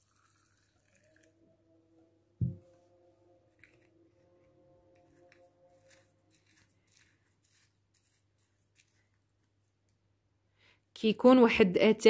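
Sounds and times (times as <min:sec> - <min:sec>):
plastic spoon scraping metal strainer: 0:04.9 - 0:09.1.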